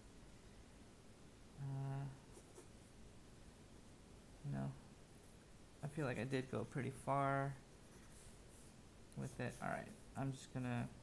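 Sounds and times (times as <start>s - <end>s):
pencil scratching on paper: 5.9s - 7.0s, 7.7s - 10.2s.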